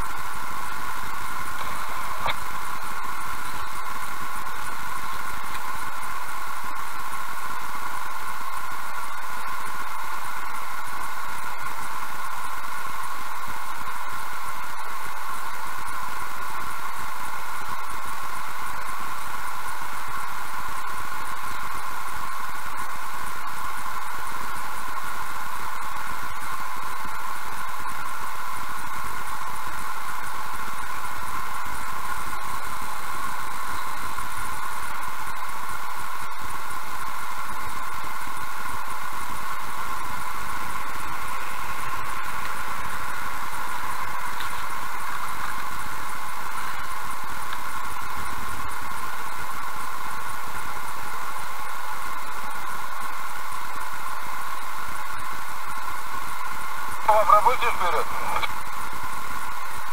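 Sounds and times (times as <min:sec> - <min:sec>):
steady hiss: 0:00.0 - 0:10.5, 0:38.6 - 0:49.5, 0:57.0 - 0:59.8.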